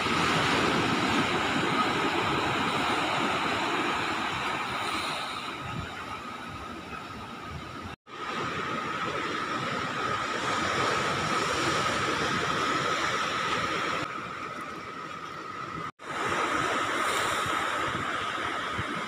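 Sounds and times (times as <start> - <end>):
wind on microphone: 0.0 - 14.1, 15.7 - 19.0
sea surf: 0.0 - 19.0.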